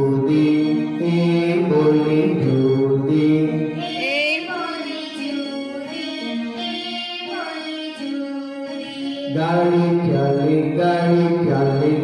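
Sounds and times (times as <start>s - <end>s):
person singing a children's song: 0.0s - 12.0s.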